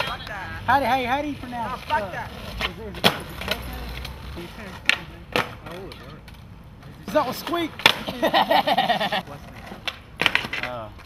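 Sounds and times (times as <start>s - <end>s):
skateboard decks clacking on asphalt: 1.0s - 8.4s, 9.3s - 11.0s.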